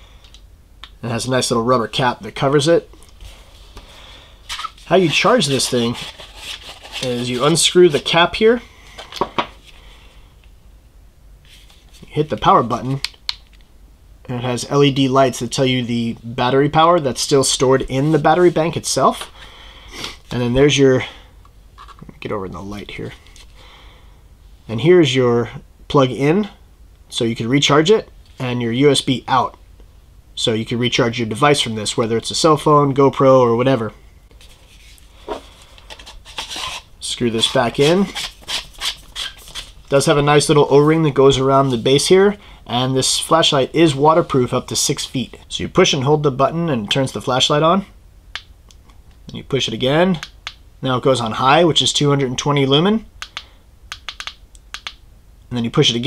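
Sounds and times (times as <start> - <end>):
scratchy rubs of screw threads: 4.5 - 7.6, 34.4 - 39.8.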